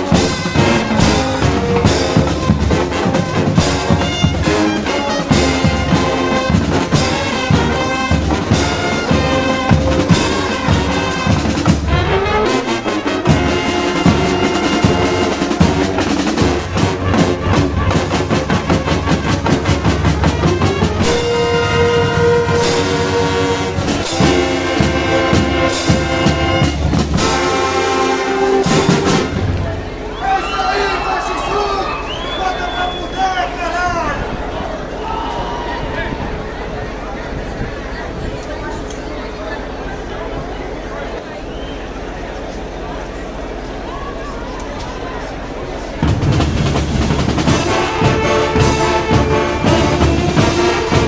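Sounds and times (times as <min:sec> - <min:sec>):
brass sustained chords: 0:00.0 - 0:30.1, 0:45.2 - 0:51.0
marching drums: 0:00.0 - 0:35.2, 0:45.6 - 0:51.0
marching band playing: 0:00.0 - 0:37.9, 0:41.0 - 0:51.0.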